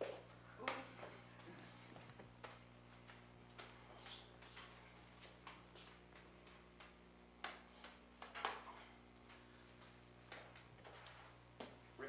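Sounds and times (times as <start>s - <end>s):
steady low hum: 0.0s - 12.0s
juggling balls slapping hands: 2.0s - 9.5s.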